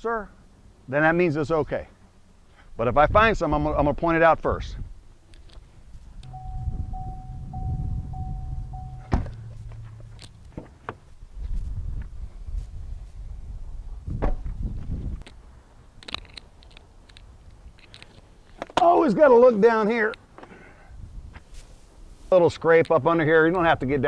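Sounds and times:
car warning chime dinging: 0:06.2 - 0:10.6
car door shutting: 0:06.3 - 0:11.1.

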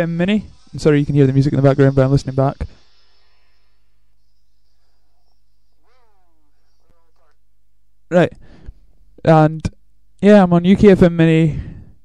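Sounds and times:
low mains hum: 0:00.0 - 0:12.0
faint pitched call: 0:03.2 - 0:07.8.

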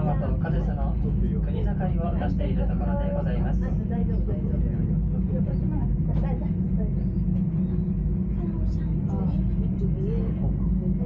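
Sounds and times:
faint voices: 0:00.0 - 0:11.0
gondola rumble and hum: 0:00.0 - 0:11.0.

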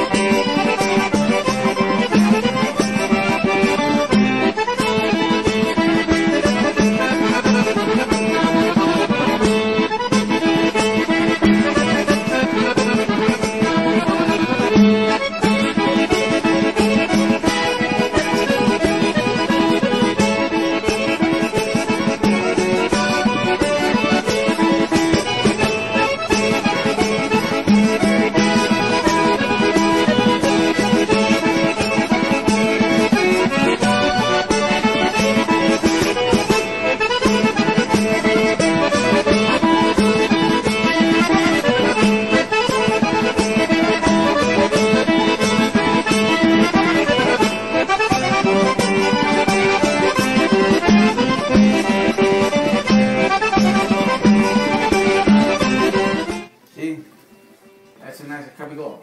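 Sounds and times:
folk music with accordion: 0:00.0 - 0:58.2.

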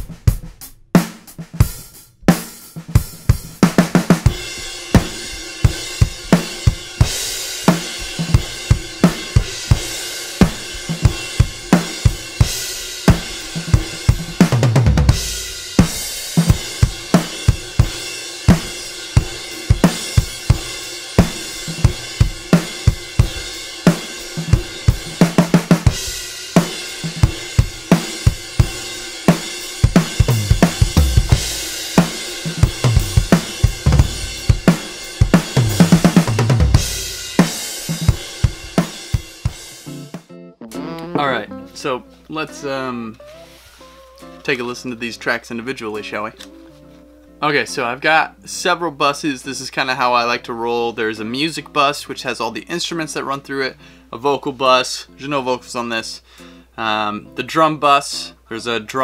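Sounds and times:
drum fills: 0:00.0 - 0:41.9
acoustic drum kit groove: 0:00.0 - 0:46.3.

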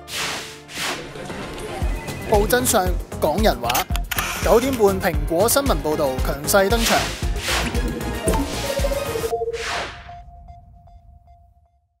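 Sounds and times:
held electronic tone: 0:07.8 - 0:11.9.

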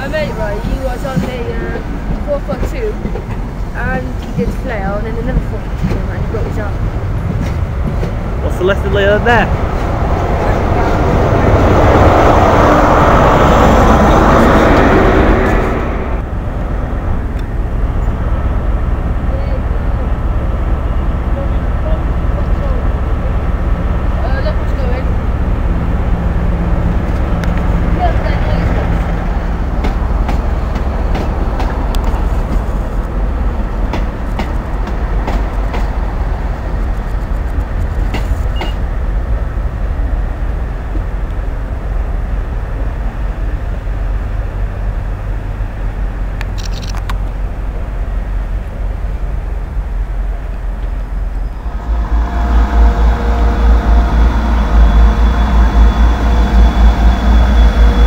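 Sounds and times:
low rumble of diesel trains: 0:00.0 - 0:58.0
scattered clicks: 0:46.4 - 0:47.3
held engine tone: 0:51.1 - 0:58.0.

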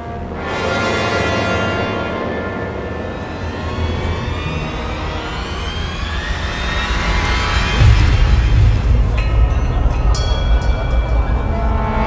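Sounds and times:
rising machine-like drone: 0:00.0 - 0:12.0
low rumble: 0:02.1 - 0:12.0.

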